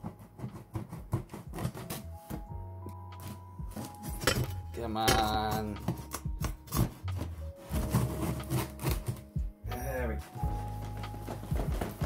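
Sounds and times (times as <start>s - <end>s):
knife slicing packing tape: 0.0s - 2.1s, 5.9s - 9.3s
background music: 0.0s - 12.0s.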